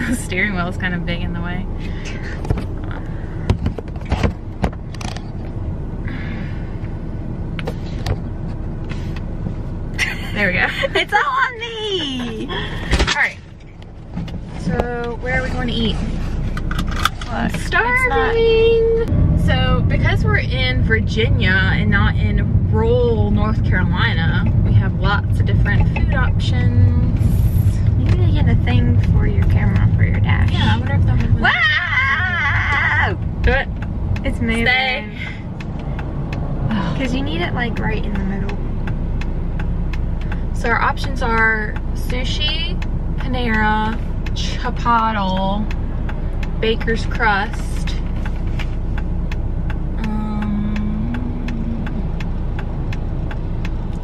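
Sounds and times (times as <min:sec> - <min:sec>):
women talking: 0:00.0 - 0:01.8, 0:10.0 - 0:13.5, 0:14.6 - 0:16.1, 0:17.2 - 0:35.4, 0:36.7 - 0:38.6, 0:40.6 - 0:45.7, 0:46.6 - 0:48.0, 0:50.0 - 0:52.0
car rumbling: 0:00.0 - 0:54.0.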